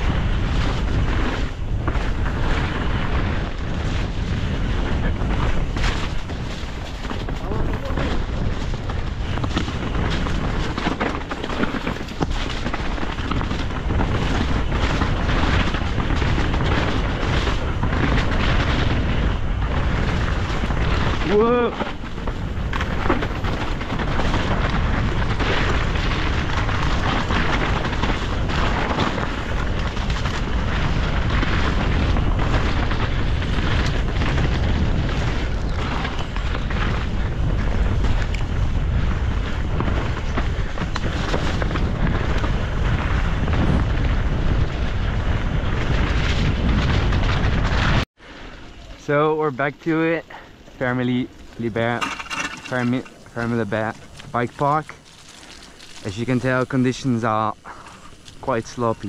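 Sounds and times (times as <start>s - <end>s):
bike rattling: 0.0s - 59.0s
tyres on dirt trail: 0.0s - 59.0s
wind buffeting microphone: 0.0s - 59.0s.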